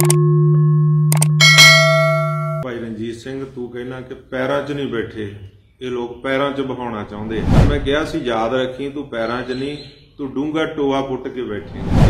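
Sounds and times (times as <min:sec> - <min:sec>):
held low tone: 0:00.0 - 0:02.7
bright bell chime: 0:01.4 - 0:02.7.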